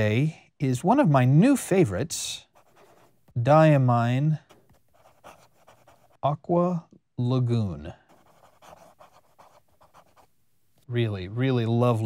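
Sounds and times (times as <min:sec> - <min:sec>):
fountain pen scratching on paper: 0:02.5 - 0:03.2, 0:04.4 - 0:06.2, 0:08.0 - 0:10.3.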